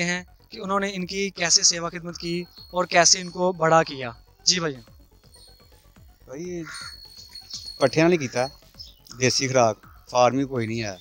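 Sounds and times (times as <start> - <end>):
man speaking: 0.0 - 4.8, 6.3 - 6.8, 7.8 - 8.5, 9.1 - 11.0
crow cawing: 6.3 - 10.8.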